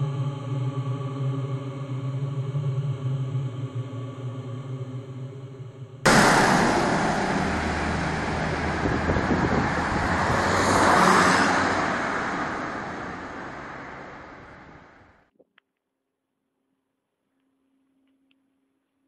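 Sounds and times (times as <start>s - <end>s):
loud rushing rumbling noise: 6.1s - 15.0s.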